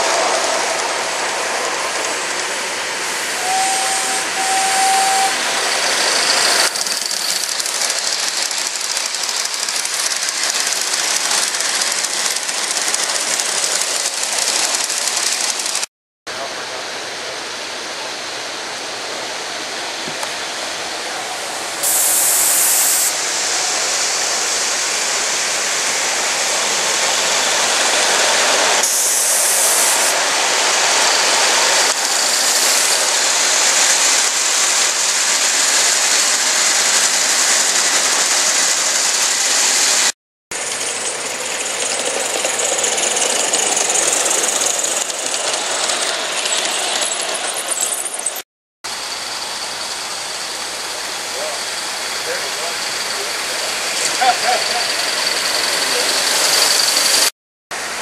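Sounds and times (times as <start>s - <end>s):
steam hissing: 0.0s - 15.8s, 18.0s - 47.8s, 48.9s - 58.0s
model train running on rails: 0.0s - 58.0s.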